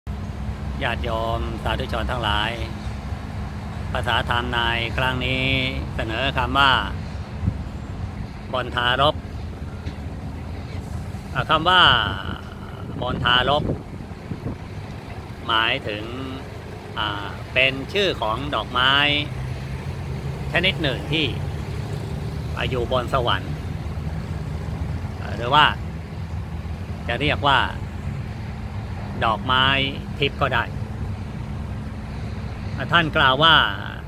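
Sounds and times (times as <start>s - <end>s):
low background rumble: 0.1s - 32.1s
man speaking: 0.8s - 2.8s, 4.0s - 7.0s, 8.5s - 9.2s, 10.6s - 13.8s, 15.4s - 19.3s, 20.5s - 21.4s, 22.6s - 23.6s, 25.2s - 25.8s, 27.1s - 27.8s, 29.2s - 30.7s, 32.8s - 34.0s.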